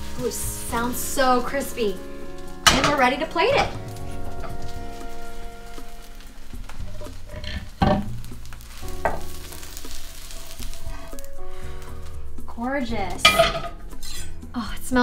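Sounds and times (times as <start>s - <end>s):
pancake sizzling in hot oil: 0.0s - 14.1s
spatula knocking and scraping pan: 2.6s - 5.0s, 6.7s - 10.3s, 13.1s - 13.8s.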